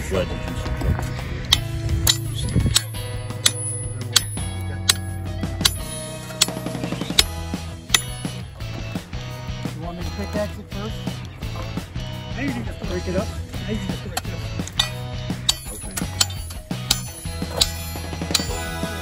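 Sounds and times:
background music: 0:00.0 - 0:19.0
hammer striking chisel: 0:01.5 - 0:06.6, 0:07.2 - 0:08.4, 0:14.2 - 0:18.8.

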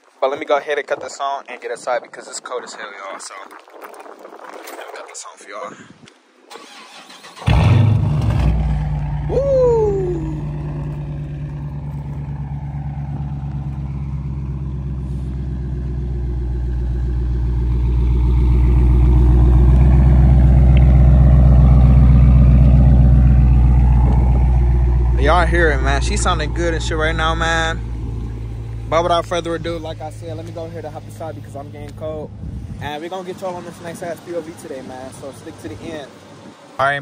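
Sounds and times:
car engine starting and idling: 0:06.5 - 0:37.0.

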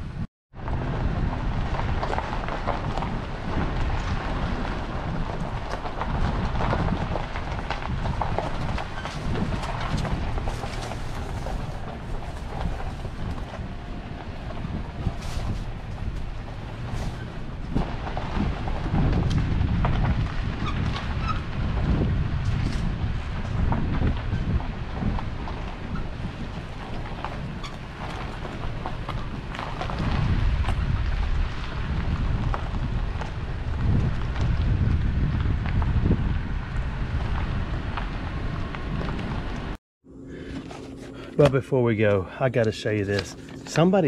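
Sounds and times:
wind buffeting microphone: 0:00.0 - 0:39.8.

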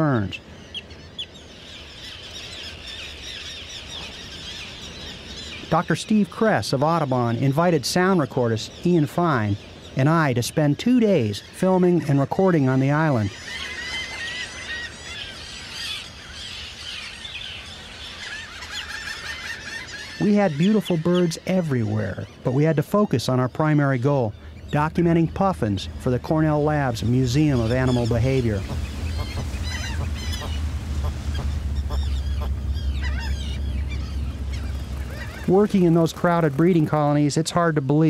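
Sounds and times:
terns calling in chorus: 0:00.0 - 0:38.0
steady low rumble: 0:22.5 - 0:37.8.

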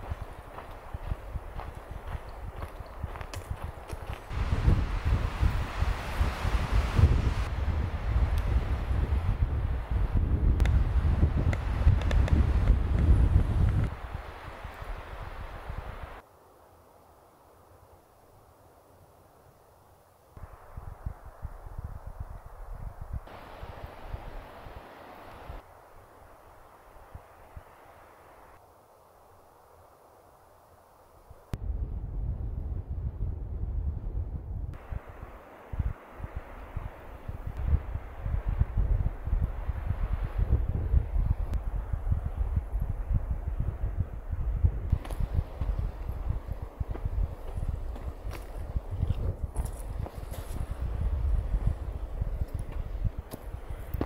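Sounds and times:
wind buffeting microphone: 0:00.0 - 0:16.2, 0:20.4 - 0:25.6, 0:31.5 - 0:54.0
outdoor air: 0:00.0 - 0:54.0.

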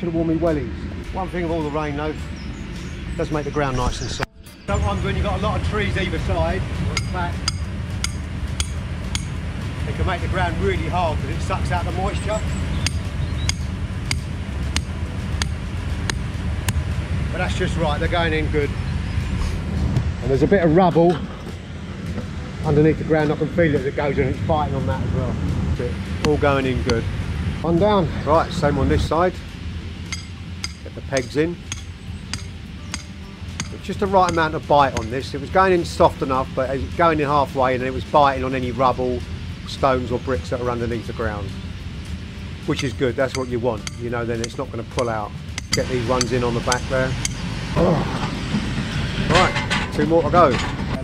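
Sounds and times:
hammer striking metal peg: 0:07.0 - 0:09.4, 0:12.8 - 0:16.8, 0:30.1 - 0:35.2, 0:42.7 - 0:47.4.

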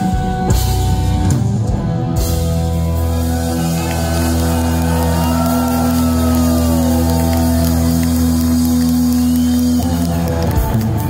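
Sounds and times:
rock band holding electric guitar chord: 0:00.0 - 0:11.0
audience whooping and shouting: 0:03.0 - 0:10.8.

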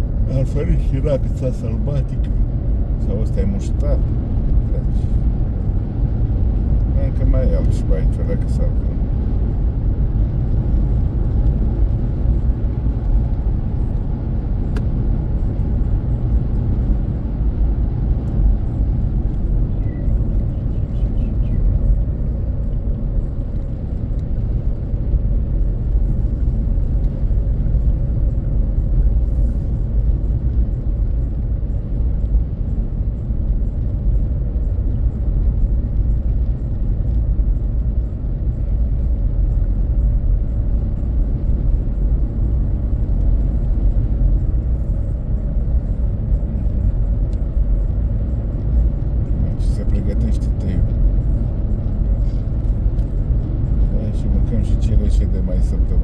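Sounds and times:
car interior road noise: 0:00.0 - 0:56.0.

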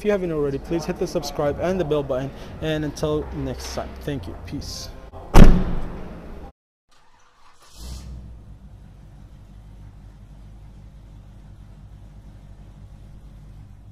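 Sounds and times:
car door slamming: 0:05.3 - 0:06.1.

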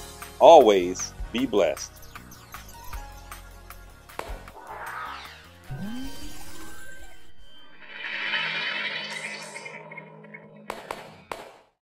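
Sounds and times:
shimmering music swell: 0:04.6 - 0:10.7
held low tone: 0:05.7 - 0:10.5.

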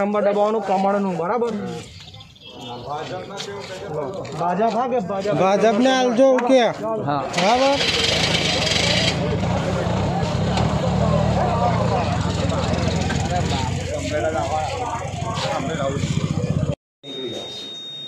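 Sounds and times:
people talking: 0:00.0 - 0:17.8
auto-rickshaw engine running: 0:07.3 - 0:16.8.

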